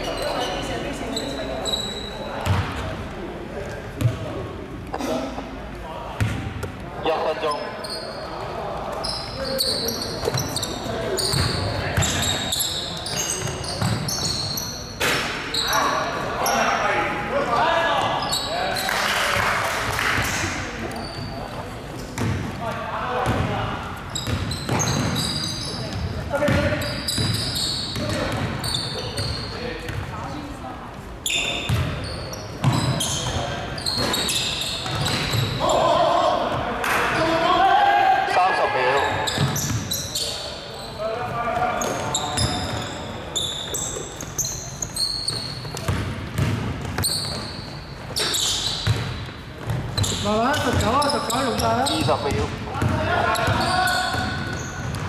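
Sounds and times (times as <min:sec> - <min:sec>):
basketball bouncing on hardwood: 0:45.9 - 0:47.0
players calling out: 0:50.0 - 0:55.0.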